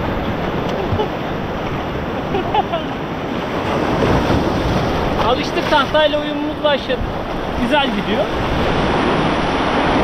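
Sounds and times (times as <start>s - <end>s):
small waves breaking in shallows: 0.0s - 10.0s.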